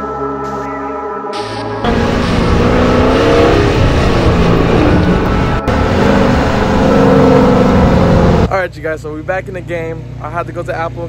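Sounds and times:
car engine revving: 1.4 - 8.6.

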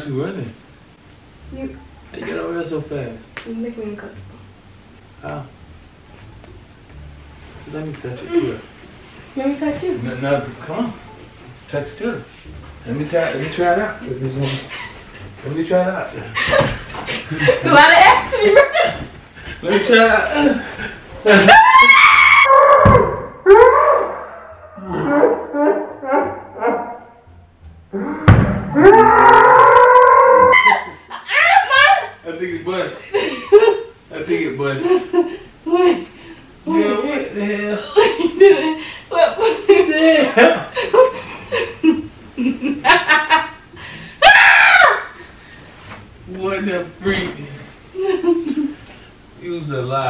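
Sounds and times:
people laughing and squealing: 21.2 - 22.5, 28.9 - 32.2
woman screaming: 21.5 - 24.1, 28.8 - 32.2, 44.2 - 45.2
low thud: 27.5 - 28.8.

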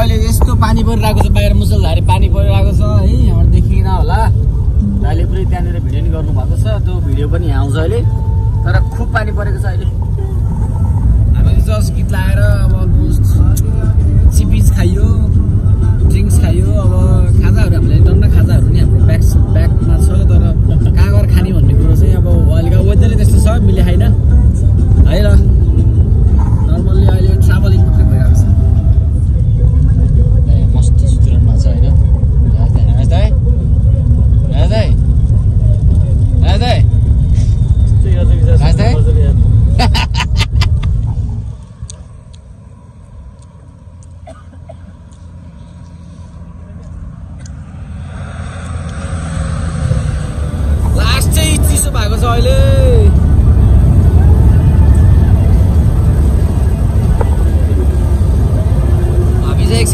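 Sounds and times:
car cabin road and engine noise: 0.0 - 59.9.

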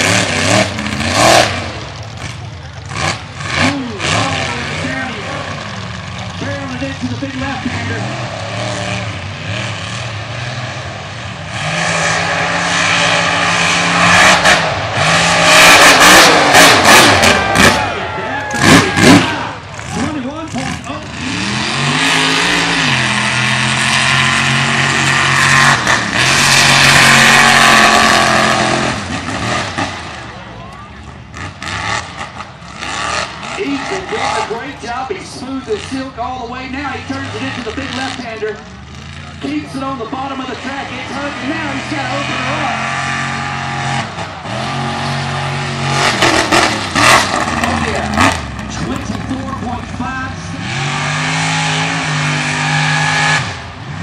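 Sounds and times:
truck engine revving hard: 0.0 - 54.0.

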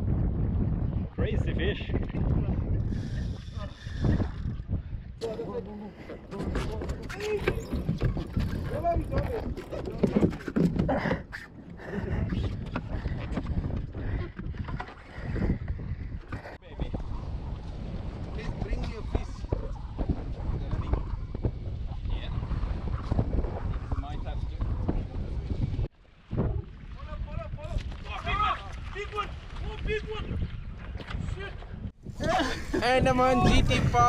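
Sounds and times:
wind buffeting microphone: 0.0 - 34.0.

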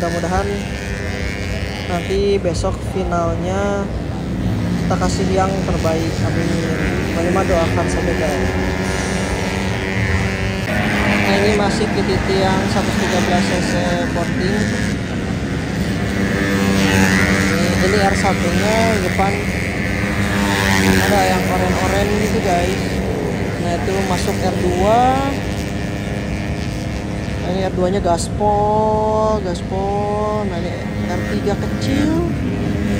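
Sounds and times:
motorcycle engine revving high: 0.0 - 32.9
person speaking: 10.7 - 14.9, 20.8 - 25.4, 27.4 - 32.6.

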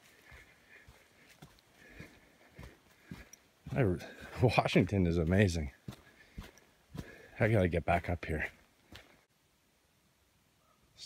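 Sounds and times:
footsteps on dirt trail: 0.0 - 9.3.

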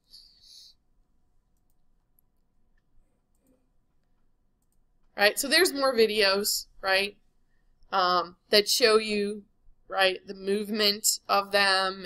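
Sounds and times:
computer mouse clicks: 1.5 - 5.2.

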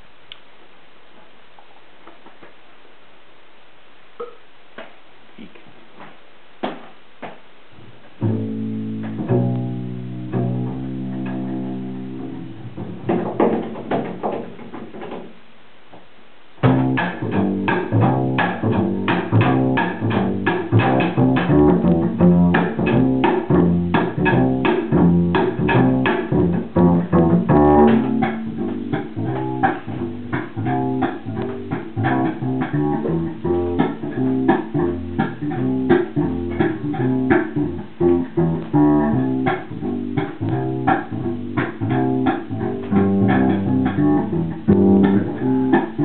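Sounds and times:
double bass playing: 8.1 - 14.5, 16.6 - 46.0.

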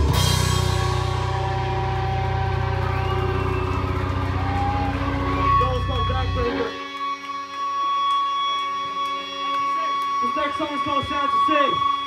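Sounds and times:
distorted electric guitar drone: 0.0 - 12.0
high feedback whine: 0.0 - 12.0.

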